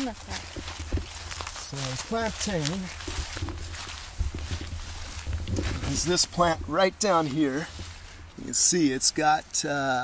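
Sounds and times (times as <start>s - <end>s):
low microphone rumble: 0.0s - 8.6s
footsteps through undergrowth: 0.0s - 10.0s.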